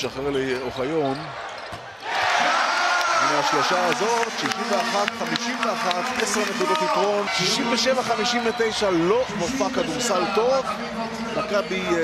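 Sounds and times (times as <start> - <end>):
crowd cheering: 2.0 - 10.4.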